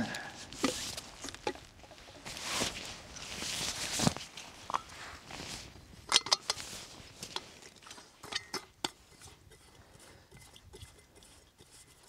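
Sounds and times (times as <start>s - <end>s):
rustling in a nylon sack: 0.2s - 6.0s, 6.6s - 7.6s.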